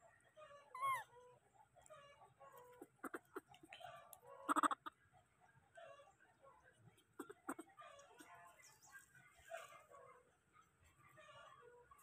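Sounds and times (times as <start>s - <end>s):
faint squeaks: 0.4s - 4.5s
baby monkey high call: 0.6s - 1.2s, 4.5s - 4.9s.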